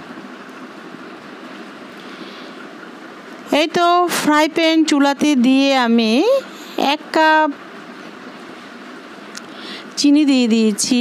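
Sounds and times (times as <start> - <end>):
gas burner hissing: 0.0 - 11.0
person speaking: 3.5 - 7.6, 9.7 - 11.0.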